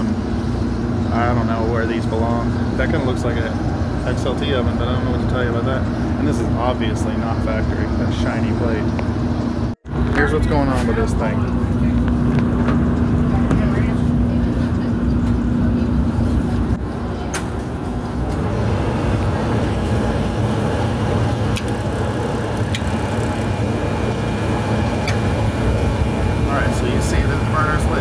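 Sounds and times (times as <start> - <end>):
gas oven burner rumble: 0.0 - 28.0
steady hum: 0.0 - 28.0.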